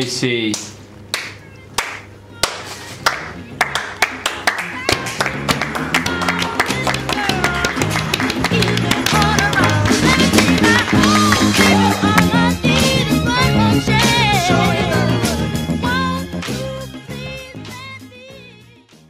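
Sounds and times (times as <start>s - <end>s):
hand claps: 0.5s - 13.0s, 16.3s - 16.7s
instrumental music: 1.4s - 19.0s.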